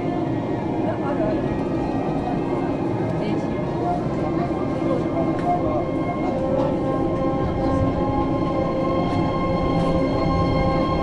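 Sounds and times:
monorail rumbling: 0:00.0 - 0:11.0.

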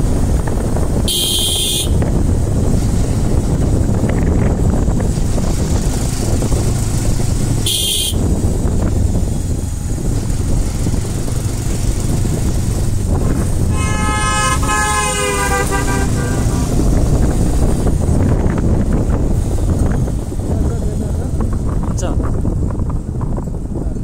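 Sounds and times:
vehicle driving rumble: 0:00.0 - 0:24.0
vehicle horn: 0:01.1 - 0:02.0, 0:07.6 - 0:08.3, 0:13.7 - 0:16.8.

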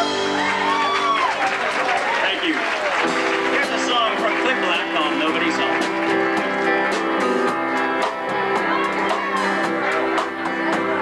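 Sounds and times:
audience applauding: 0:00.0 - 0:11.0
voices calling out: 0:07.7 - 0:11.0.

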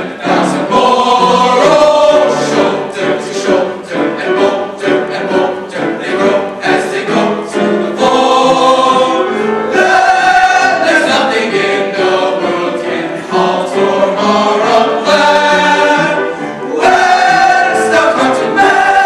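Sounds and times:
men's choir singing in parts: 0:00.0 - 0:19.0.

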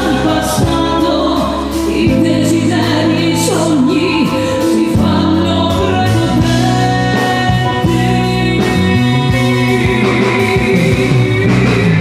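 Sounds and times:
live dance-band music: 0:00.0 - 0:12.0
woman singing into a microphone: 0:00.0 - 0:12.0.

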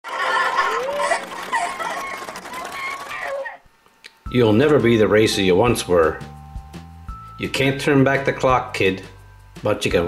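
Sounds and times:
laughter: 0:00.1 - 0:02.4
high-pitched voices: 0:00.1 - 0:03.7.

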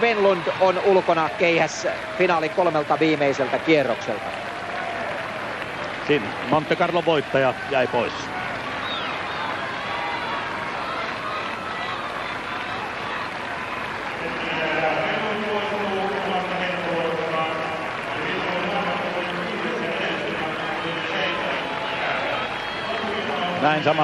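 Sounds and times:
man's voice echoing: 0:00.0 - 0:03.8, 0:14.2 - 0:21.8
crowd noise in stadium: 0:00.0 - 0:24.0.

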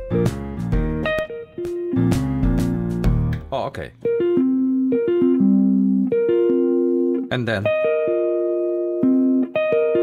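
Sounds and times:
keyboard instrument notes: 0:00.0 - 0:10.0.

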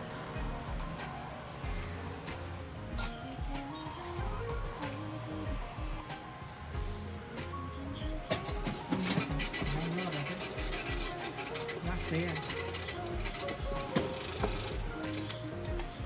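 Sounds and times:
background music with steady beat: 0:00.0 - 0:16.0.

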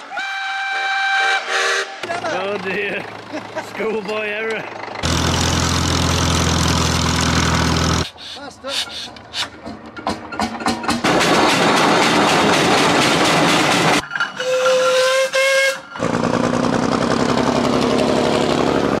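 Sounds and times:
steam engine whistle: 0:00.0 - 0:02.0, 0:14.4 - 0:16.0
engine running steadily: 0:02.1 - 0:08.1.

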